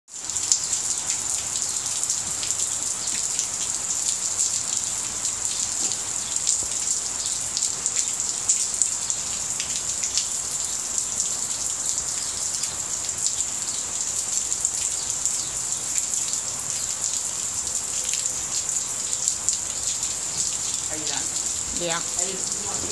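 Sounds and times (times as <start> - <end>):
rain on concrete: 0.1 - 22.9.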